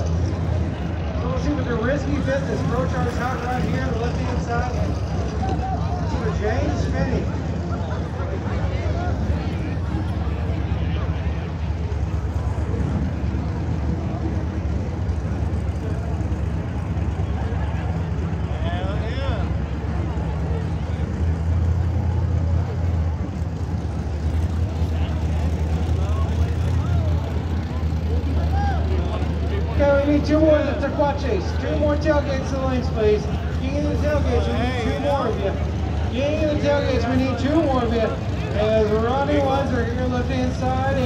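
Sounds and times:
crowd chatter: 0:00.0 - 0:41.0
idling engines rumbling: 0:00.0 - 0:41.0.

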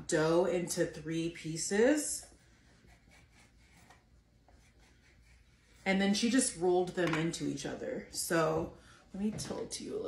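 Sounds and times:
knife scraping dough on wooden board: 0:02.8 - 0:05.9.

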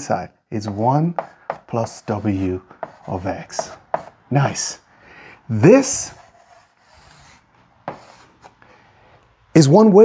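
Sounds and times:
chalk scraping on blackboard: 0:00.6 - 0:04.7, 0:05.8 - 0:08.6
chalk tapping on board: 0:00.6 - 0:04.7, 0:06.2 - 0:08.5.

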